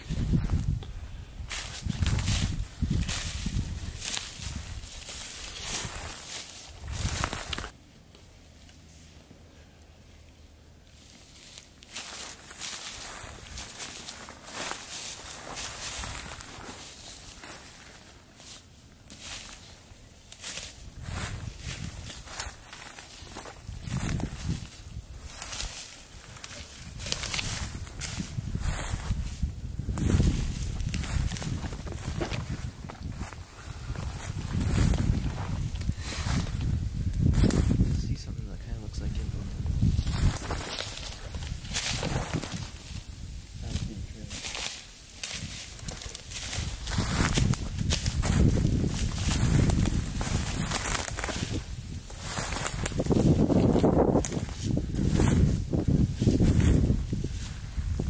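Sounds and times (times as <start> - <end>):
footsteps crunching through leaves: 0.0 - 7.8, 10.9 - 38.0, 39.0 - 58.0.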